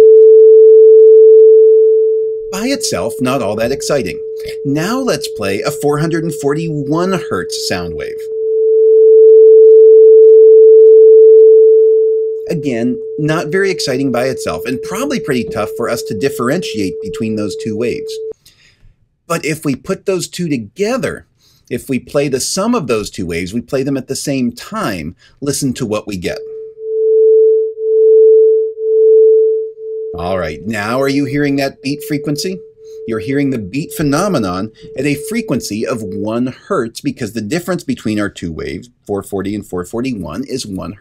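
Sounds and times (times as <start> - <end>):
pure sine-wave tone: 0.0 - 18.4, 26.6 - 36.3.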